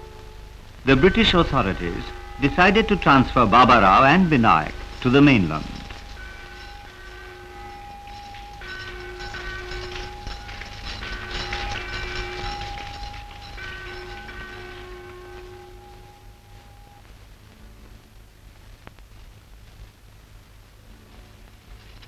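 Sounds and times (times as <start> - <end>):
train rumbling: 0.0 - 17.0
train whistle blasts: 0.0 - 17.0.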